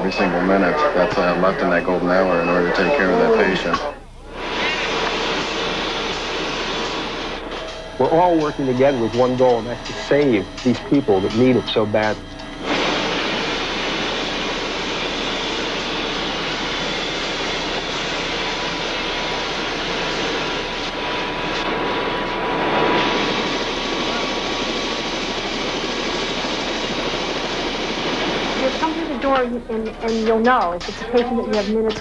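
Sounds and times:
helicopter engine and rotor noise: 0:00.0 - 0:04.0, 0:04.8 - 0:32.0
faint steady whine: 0:00.0 - 0:32.0.

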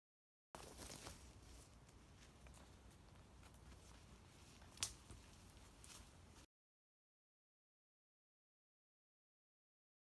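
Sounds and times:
rustling in forest undergrowth: 0:00.6 - 0:06.5.

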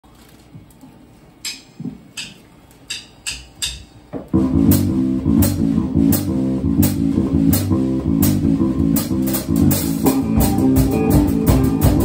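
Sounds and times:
drumstick or hi-hat clicks: 0:01.4 - 0:04.0
soft low drum thumps: 0:04.2 - 0:12.0.

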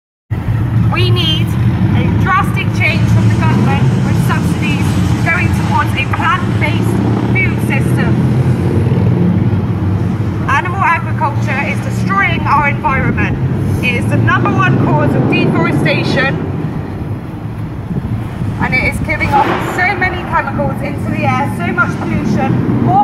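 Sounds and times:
woman speaking through megaphone: 0:00.8 - 0:08.2, 0:10.4 - 0:16.4, 0:18.6 - 0:23.0
low rumble: 0:11.5 - 0:23.0.

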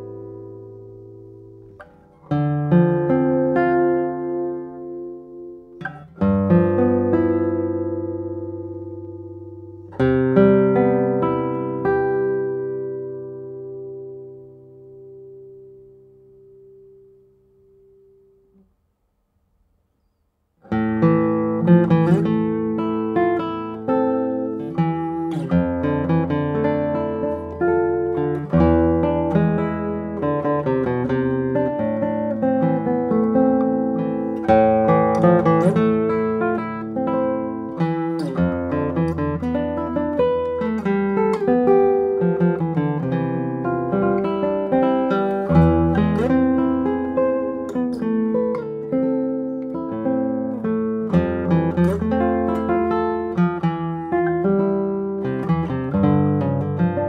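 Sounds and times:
fingerpicked classical guitar: 0:00.0 - 0:57.0.

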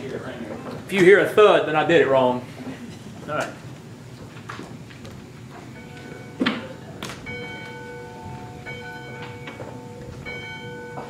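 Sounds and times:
muffled church bell ringing: 0:05.6 - 0:11.0.

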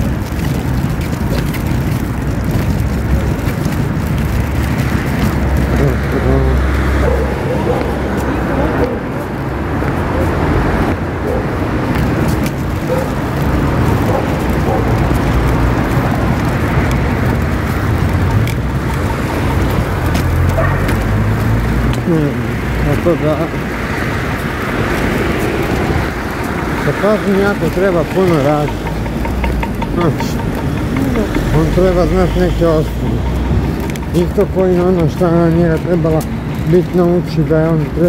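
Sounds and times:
low rumble of street noise: 0:00.0 - 0:38.0
person speaking a word: 0:05.7 - 0:06.7.

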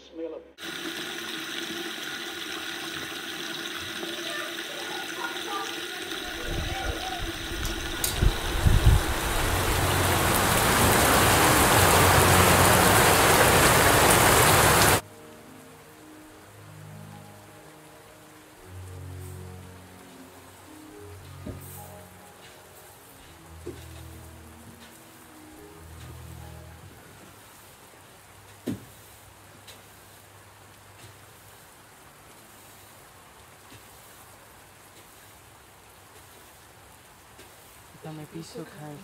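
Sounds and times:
water running from tap: 0:00.6 - 0:15.0
slow low music: 0:06.2 - 0:13.7, 0:14.4 - 0:28.6.

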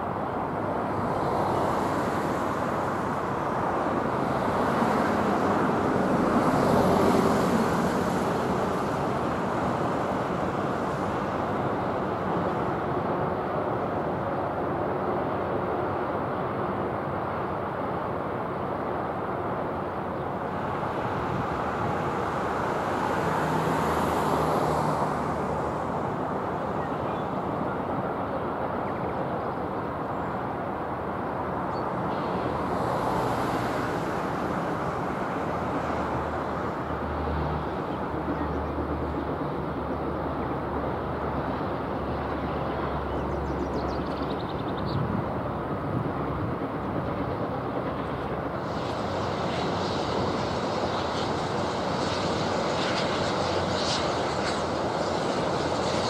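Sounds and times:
city road traffic: 0:00.0 - 0:56.0
vehicles passing: 0:20.0 - 0:27.8, 0:30.9 - 0:56.0.

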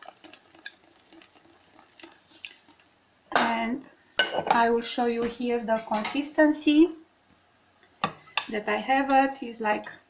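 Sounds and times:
whisk beating batter in bowl: 0:00.0 - 0:02.9.

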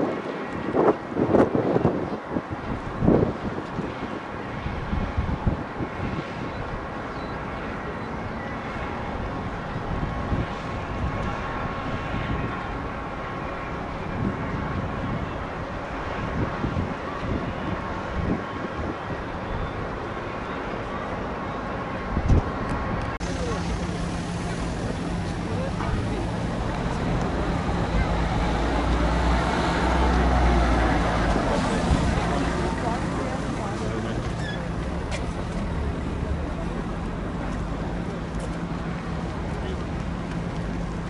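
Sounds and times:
distant traffic: 0:00.0 - 0:41.0.

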